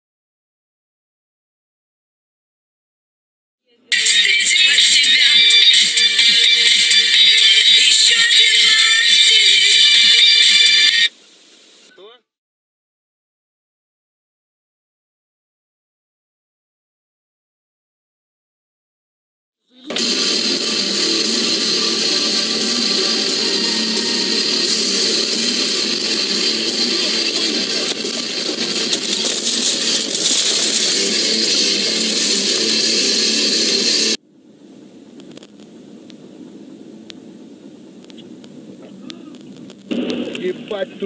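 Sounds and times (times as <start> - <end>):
loud harsh rushing noise: 19.9 - 34.2
road noise: 19.9 - 41.0.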